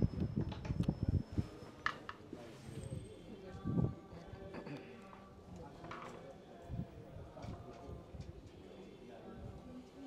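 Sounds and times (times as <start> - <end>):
faint crowd murmur: 0.8 - 10.0.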